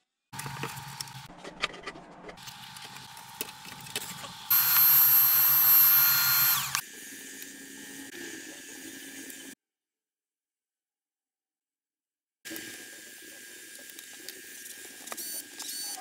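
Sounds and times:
cordless vacuum cleaner running: 4.2 - 6.8.

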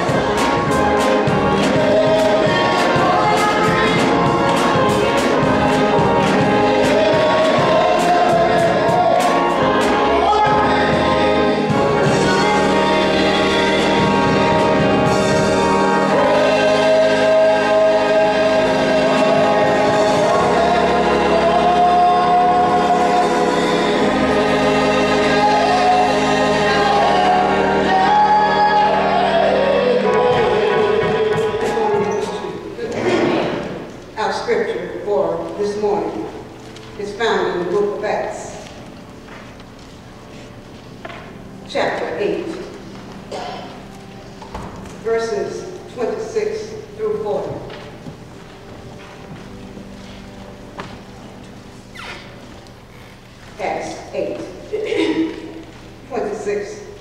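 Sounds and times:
gospel choir singing: 0.0 - 52.0
organ accompaniment: 0.0 - 57.0.

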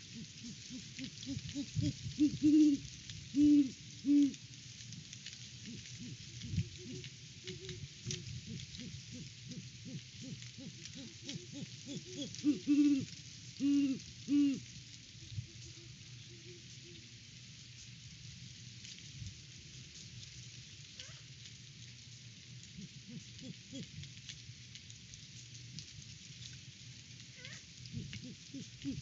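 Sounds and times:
distant owl hoots: 0.0 - 4.4, 5.6 - 17.1, 22.8 - 24.0, 27.4 - 29.0
owl hooting: 0.0 - 4.4, 5.6 - 14.7, 15.4 - 17.1, 22.8 - 24.0, 27.4 - 29.0
owl rising squawk: 0.0 - 4.4, 5.7 - 14.6, 22.8 - 23.9, 27.4 - 29.0
wind noise: 1.2 - 2.9, 5.7 - 9.2.

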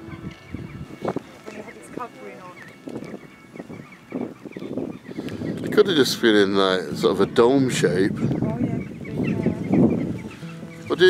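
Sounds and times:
wind gusts on microphone: 0.0 - 11.0.

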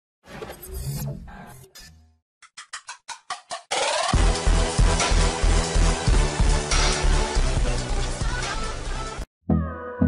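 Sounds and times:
electronic music with a beat: 2.5 - 10.0.

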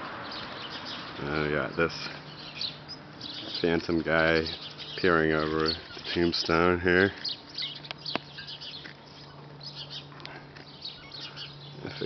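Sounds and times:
small birds chirping: 0.0 - 12.0
steady low hum: 0.0 - 12.0.

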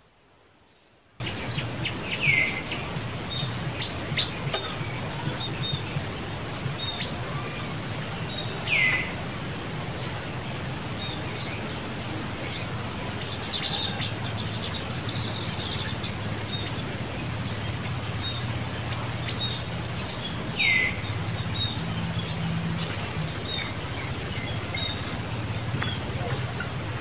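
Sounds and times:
small birds chirping: 0.6 - 27.0
low steady hum: 1.2 - 27.0.

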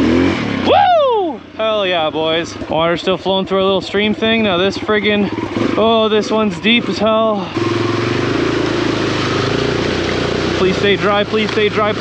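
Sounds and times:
dirt bike engine running: 0.0 - 12.0.

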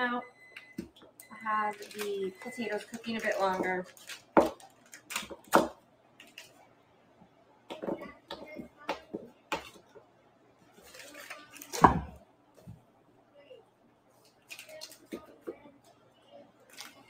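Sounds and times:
wrapper handling: 1.6 - 5.5, 10.7 - 11.8, 14.2 - 15.1, 16.7 - 17.0.

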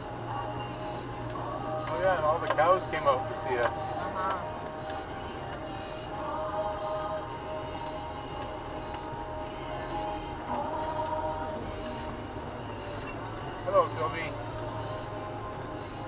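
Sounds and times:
engine and road rumble: 0.0 - 16.0
wavering musical tones: 0.0 - 16.0.

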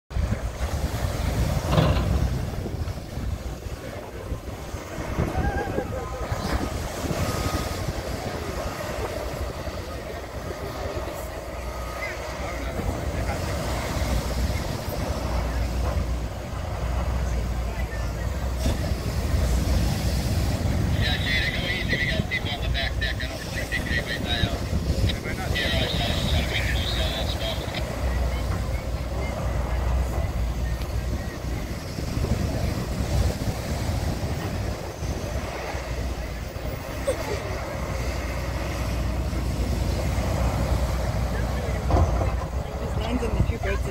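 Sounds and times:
wind on microphone: 0.1 - 17.8, 18.4 - 43.9
heavy engine rumbling: 0.1 - 43.9
surf breaking: 0.1 - 43.9.

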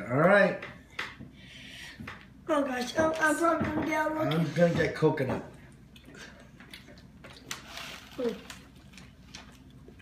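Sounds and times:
paper bag rustling: 7.5 - 9.6.

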